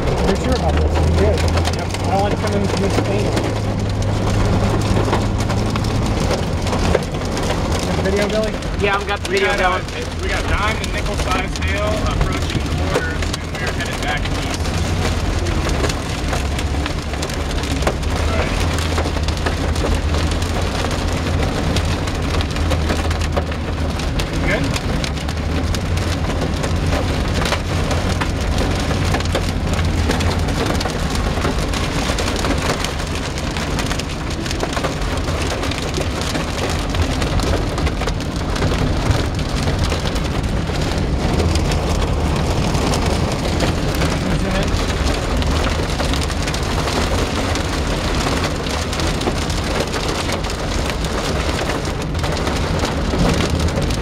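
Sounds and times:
hail and rain on car roof: 0.0 - 54.0
low rumble: 0.0 - 54.0.

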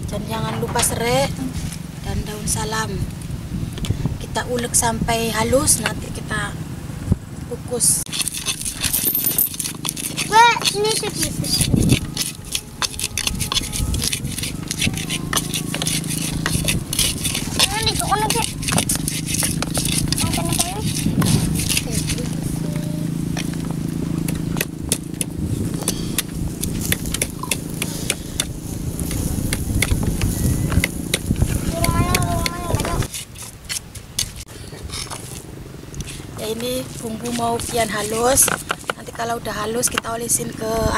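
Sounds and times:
steady low hum: 0.0 - 38.1
pestle grinding in mortar: 8.1 - 40.2
child's voice: 10.2 - 19.0, 20.2 - 20.9, 21.7 - 23.2, 31.6 - 33.1.

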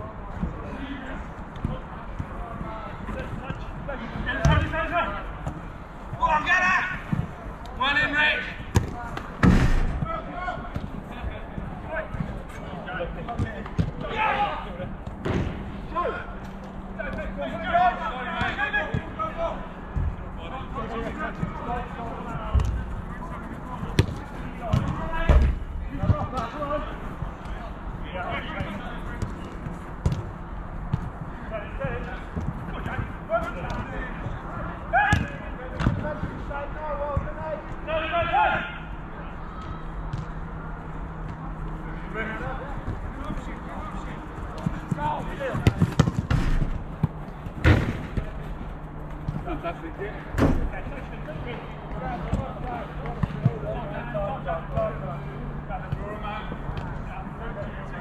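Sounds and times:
players calling out: 0.5 - 58.0
football thuds: 8.6 - 12.4, 22.3 - 23.0, 23.7 - 26.6, 28.4 - 34.4, 40.1 - 40.4, 42.8 - 49.6, 50.3 - 50.9.

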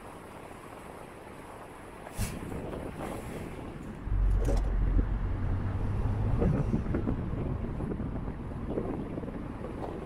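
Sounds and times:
car engine and road rumble: 0.0 - 10.0
wind buffeting microphone: 0.0 - 10.0.

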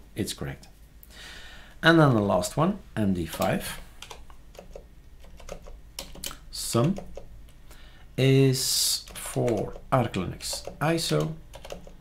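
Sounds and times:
computer keyboard typing: 3.4 - 7.3, 9.0 - 12.0.

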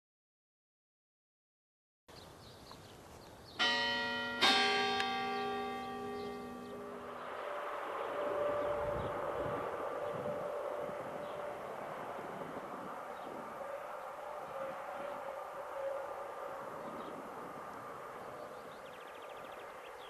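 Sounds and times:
church bell striking: 3.6 - 11.7
train rumbling on the line: 5.9 - 13.2.

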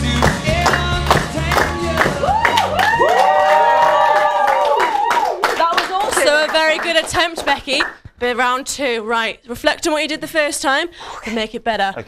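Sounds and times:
backing music: 0.0 - 3.2
people clapping: 0.0 - 8.0
people whooping: 2.0 - 5.4.

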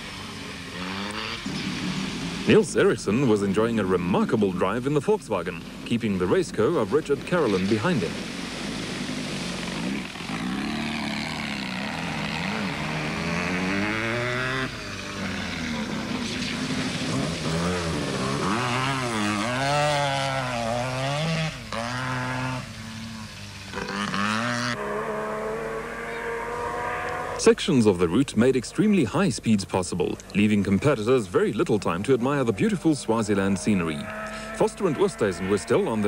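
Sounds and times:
racing car engines revving: 0.0 - 4.9, 5.5 - 29.1, 31.3 - 36.0
water spraying hiss: 7.7 - 10.6, 15.0 - 19.4.

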